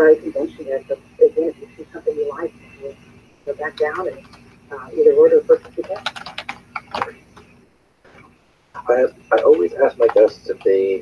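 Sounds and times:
keyboard typing: 3.7 - 4.6, 5.5 - 7.6, 9.3 - 10.9.

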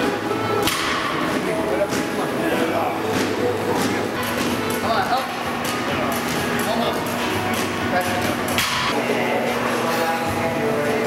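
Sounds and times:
gym music: 0.0 - 11.0.

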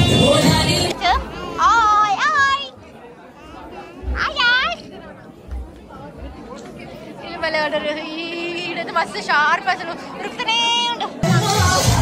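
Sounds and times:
high-pitched sing-song voice: 0.0 - 1.2, 11.2 - 12.0.

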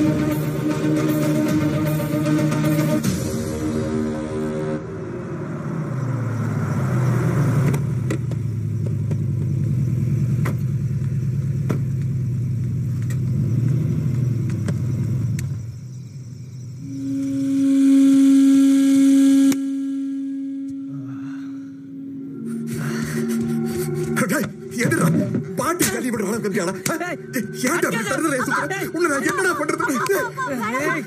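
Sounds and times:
engine running: 0.0 - 27.6
loud held low tone: 16.8 - 25.8.

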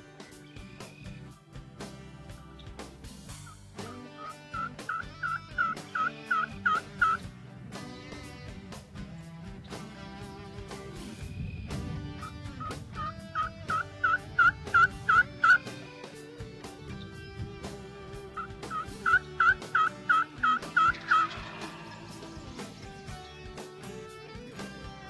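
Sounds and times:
guitar music: 0.0 - 25.0
turkey yelps: 3.4 - 7.2, 12.2 - 15.8, 18.4 - 22.3.

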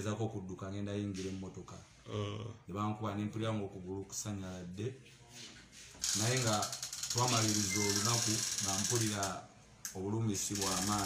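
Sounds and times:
rapid clicking rattle: 6.0 - 9.4, 10.4 - 11.0
man talking: 7.2 - 9.4.

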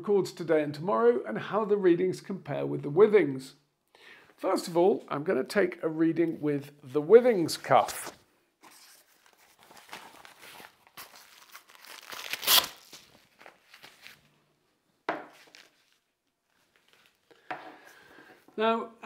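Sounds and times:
cloth rustling and crinkling: 7.7 - 17.3.

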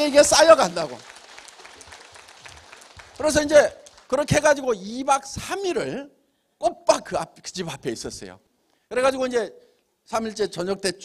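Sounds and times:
faint audience applause: 0.0 - 4.3.

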